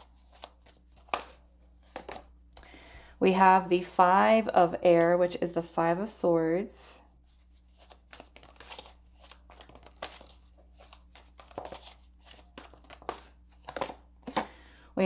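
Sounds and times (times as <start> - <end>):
cards shuffling: 0.0 - 2.3, 7.3 - 14.5
faint room hum: 0.0 - 15.0.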